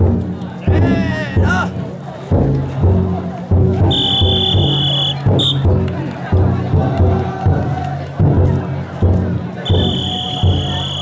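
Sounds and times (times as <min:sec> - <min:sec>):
taiko drum beating: 0:00.0 - 0:11.0.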